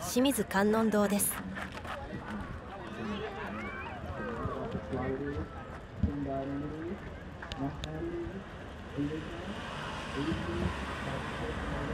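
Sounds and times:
faint passersby voices: 0.0s - 11.9s
car driving past: 9.1s - 11.9s.

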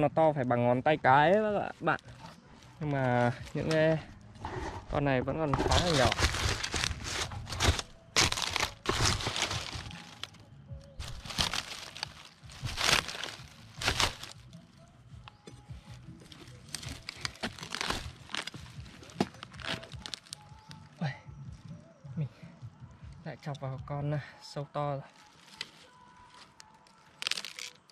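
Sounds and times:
knife chopping palm trunk: 5.5s - 10.3s, 12.6s - 14.4s
fibres tearing: 5.5s - 10.4s, 11.0s - 14.6s, 16.2s - 20.8s, 25.2s - 27.9s.

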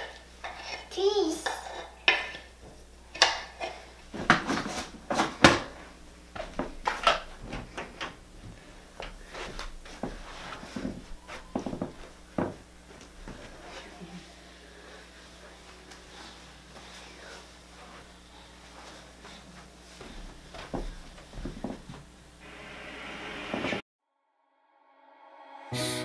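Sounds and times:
objects knocking and clattering: 2.1s - 5.8s, 6.4s - 12.6s.

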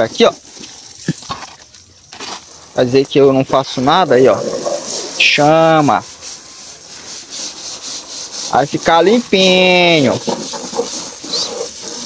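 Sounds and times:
broom scrubbing wet metal: 0.0s - 12.0s
garden hose spraying water: 0.0s - 12.0s.

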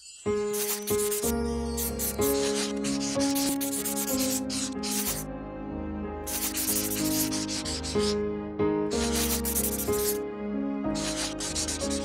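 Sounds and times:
background music with sustained notes: 0.0s - 12.0s
marker scribbling on whiteboard: 0.4s - 5.2s, 6.3s - 8.2s, 9.0s - 10.2s, 10.9s - 12.0s.

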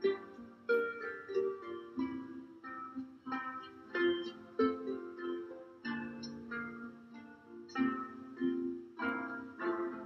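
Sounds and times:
harps playing a tune: 0.0s - 10.0s.

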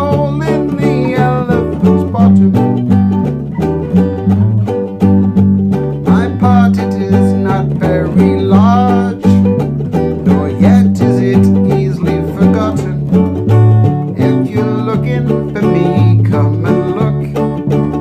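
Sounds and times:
acoustic guitar strumming: 0.0s - 18.0s
low bass line: 0.0s - 18.0s
ukulele strumming: 0.0s - 18.0s.

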